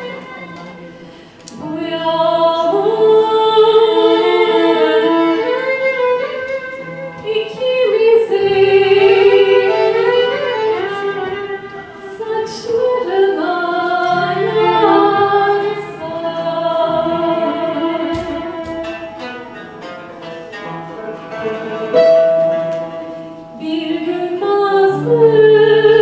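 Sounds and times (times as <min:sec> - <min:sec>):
plucked and bowed strings: 0:00.0 - 0:26.0
person singing melody: 0:21.0 - 0:26.0.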